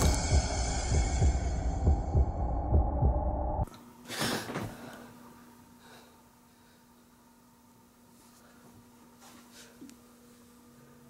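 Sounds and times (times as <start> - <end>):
heartbeat thuds: 0.0 - 3.7
low hum: 0.0 - 3.7.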